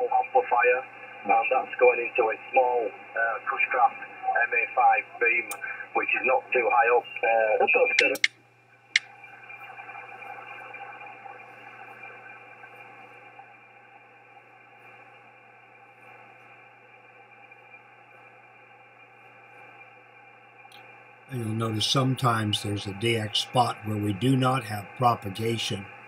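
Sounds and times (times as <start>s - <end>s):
radio band noise: 0.0s - 8.3s, 9.0s - 26.0s
voice over radio: 0.0s - 8.3s, 21.3s - 25.9s
sharp radio clicks: 5.4s - 5.8s, 7.8s - 8.4s.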